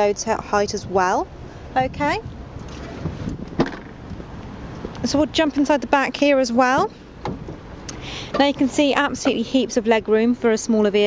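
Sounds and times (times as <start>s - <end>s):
car tailgate thud: 3.4s - 4.0s, 6.8s - 7.6s.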